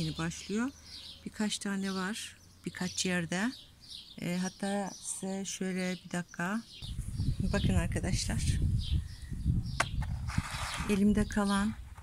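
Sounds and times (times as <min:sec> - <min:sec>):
woman speaking: 0:00.0 - 0:03.6, 0:04.2 - 0:06.7, 0:07.4 - 0:08.6, 0:10.9 - 0:11.8.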